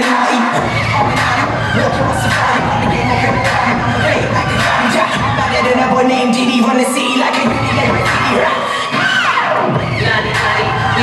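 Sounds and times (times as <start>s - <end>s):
heavy bass beat: 0.0s - 6.8s, 7.4s - 11.0s
audience cheering and shouting: 0.0s - 11.0s
hip hop dance track: 0.0s - 11.0s.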